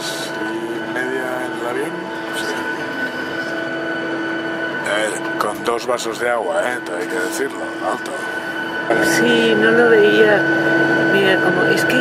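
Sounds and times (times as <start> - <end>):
air system hum: 0.0 - 12.0
airliner cabin drone: 0.0 - 12.0
constant whining tones: 0.0 - 12.0.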